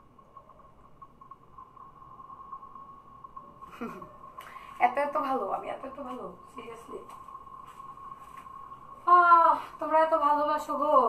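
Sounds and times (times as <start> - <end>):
faint high-pitched tone: 0.0 - 11.0
low hum: 0.0 - 11.0.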